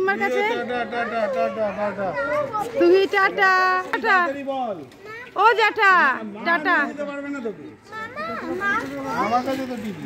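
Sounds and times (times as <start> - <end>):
voices talking: 0.0 - 10.0
young child's voice: 2.1 - 2.8.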